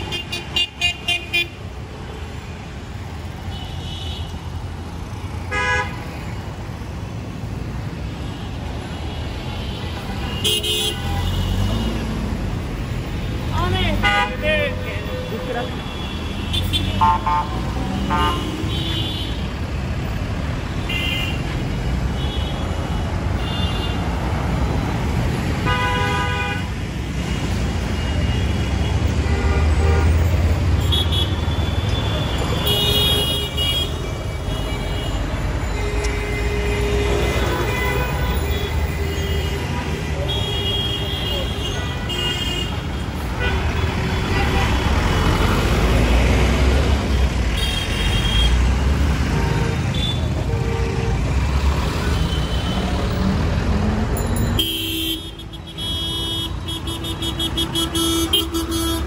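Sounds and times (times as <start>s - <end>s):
traffic engines running: 0.0s - 59.0s
car horn honks: 5.5s - 6.0s, 25.6s - 26.7s, 54.6s - 59.0s.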